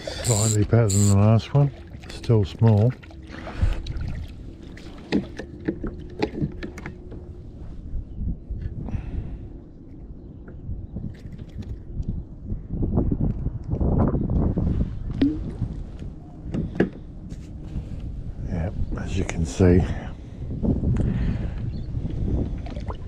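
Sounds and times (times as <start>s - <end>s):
wind noise on microphone: 7.4s - 9.5s, 10.2s - 23.0s.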